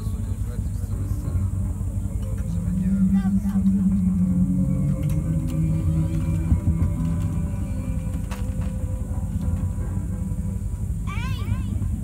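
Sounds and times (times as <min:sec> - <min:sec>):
ambient drone music: 0:00.0 - 0:12.0
steady rumble: 0:00.0 - 0:12.0.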